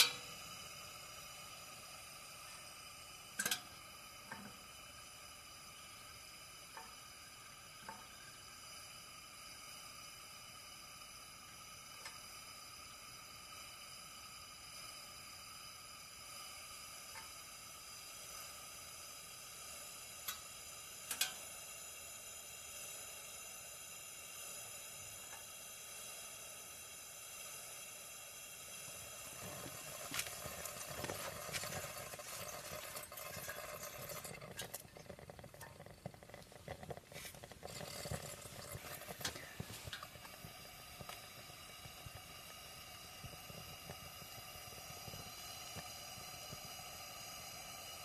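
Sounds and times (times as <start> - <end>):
camping lantern hissing: 0.0 - 48.0
rough crackle: 29.4 - 40.4.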